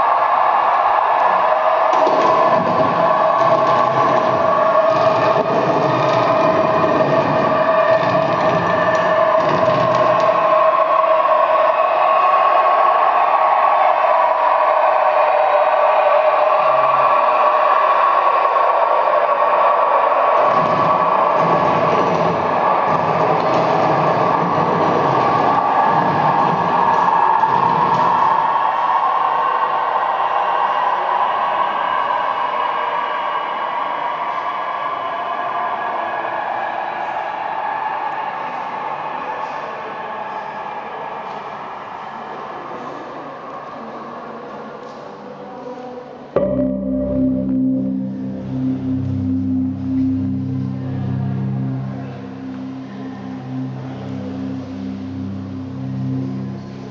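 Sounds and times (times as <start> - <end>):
low rumbling swells: 46.4 - 56.9
noisy electronic drone: 46.4 - 56.9.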